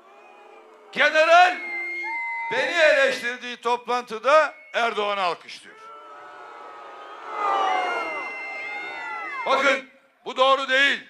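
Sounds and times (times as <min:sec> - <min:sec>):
crowd whistling: 0:00.0 - 0:03.0, 0:04.2 - 0:09.8
crowd calling out: 0:05.7 - 0:09.8.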